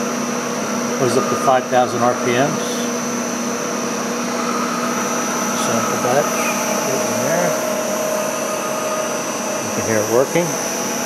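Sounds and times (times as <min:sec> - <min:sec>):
electric mill motor whirring: 0:00.0 - 0:11.0.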